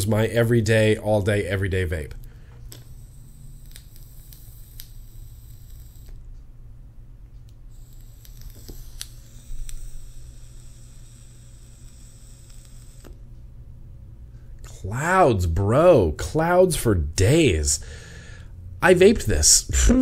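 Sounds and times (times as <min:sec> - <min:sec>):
steady low hum: 0:00.0 - 0:20.0
e-cigarette crackles and clicks: 0:02.2 - 0:06.3, 0:07.4 - 0:13.2.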